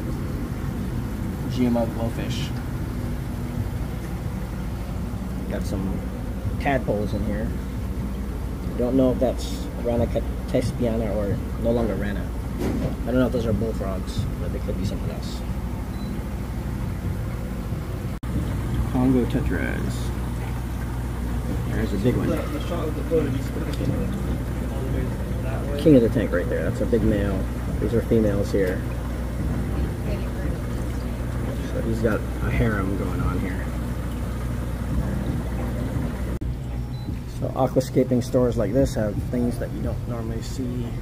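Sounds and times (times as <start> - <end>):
low background hum and rumble: 0.0 - 41.0.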